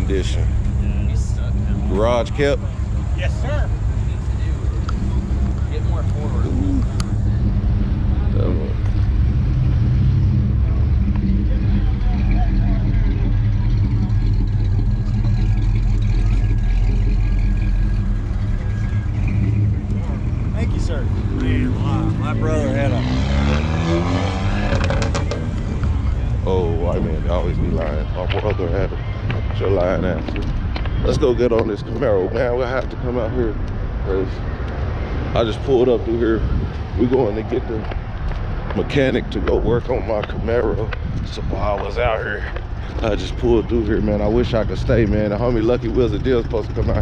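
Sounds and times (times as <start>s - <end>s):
vehicle engine idling: 0.0s - 47.0s.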